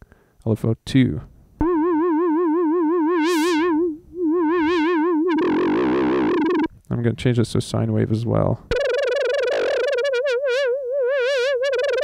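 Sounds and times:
synthesizer note with vibrato: 0:01.6 - 0:06.7, 0:08.7 - 0:12.0.

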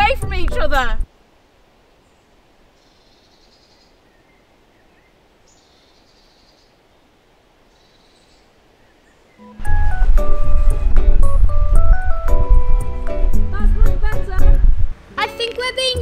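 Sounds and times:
faint high bird calls: 0:02.0 - 0:09.6.

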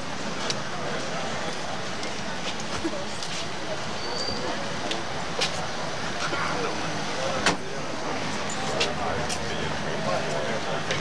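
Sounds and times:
faint indistinct voices: 0:00.0 - 0:11.0
traffic: 0:00.0 - 0:11.0.

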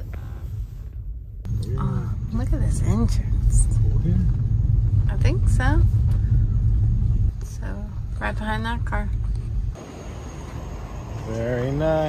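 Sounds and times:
car rumble from inside cabin: 0:00.0 - 0:09.8.

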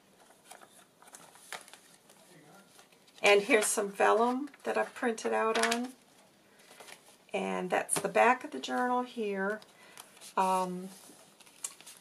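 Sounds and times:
thick paper page turning: 0:08.7 - 0:12.0.

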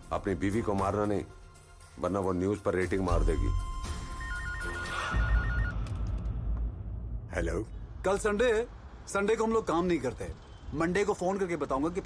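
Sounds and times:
cordless telephone ringing: 0:04.2 - 0:05.8.

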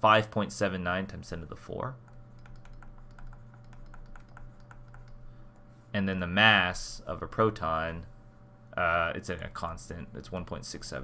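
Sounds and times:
low electrical hum: 0:00.0 - 0:11.0
stylus tapping on tablet screen: 0:02.0 - 0:05.2.

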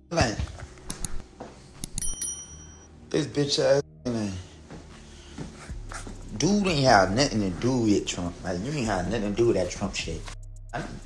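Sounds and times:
short high bell ding: 0:02.0 - 0:02.9.

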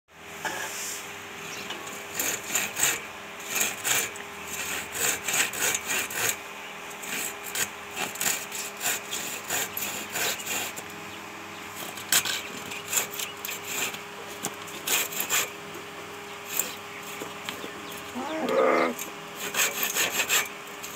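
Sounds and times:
hand saw cutting wood: 0:01.8 - 0:11.0, 0:11.7 - 0:15.6, 0:16.4 - 0:20.9.

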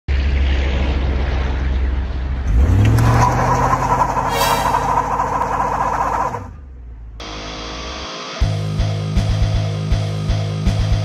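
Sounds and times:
car engine revving: 0:02.1 - 0:08.1.

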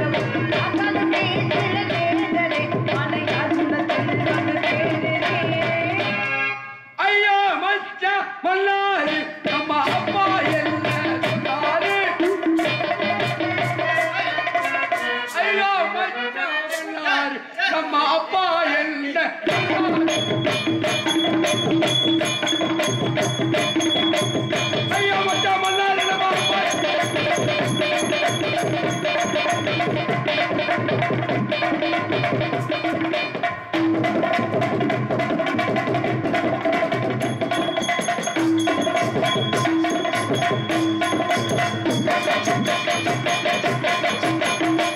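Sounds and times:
person singing: 0:00.0 - 0:06.4, 0:07.0 - 0:33.7, 0:36.2 - 0:44.9
held musical accompaniment: 0:09.0 - 0:17.6, 0:19.4 - 0:44.9
high ringing tones: 0:19.5 - 0:30.3, 0:37.2 - 0:44.9
hand drum strokes: 0:19.5 - 0:44.9.

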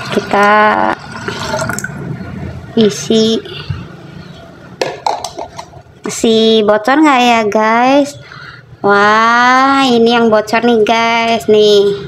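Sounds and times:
metal pot clinks and knocks: 0:04.8 - 0:05.7.

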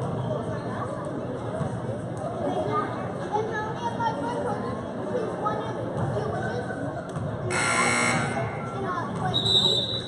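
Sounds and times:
crowd chatter: 0:00.0 - 0:10.0
scoreboard buzzer: 0:07.5 - 0:08.8.

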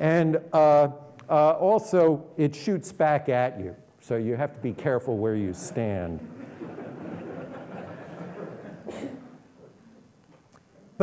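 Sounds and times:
audience laughing: 0:05.6 - 0:08.9.

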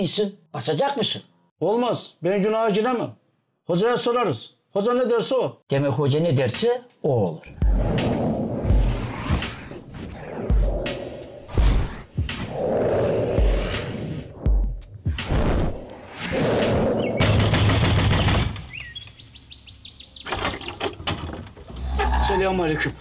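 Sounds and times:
film music with low beat: 0:06.1 - 0:18.8
small birds chirping: 0:16.4 - 0:23.0.

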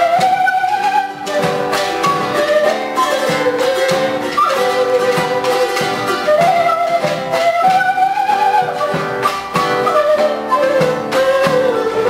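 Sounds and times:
fiddle melody: 0:00.0 - 0:12.0
stick-beaten drum: 0:00.0 - 0:12.0
wind instrument melody: 0:00.0 - 0:12.0.

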